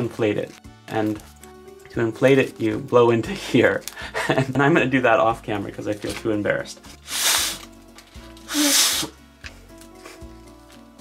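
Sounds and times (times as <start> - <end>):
puffs of breath into paper: 7.0 - 9.2.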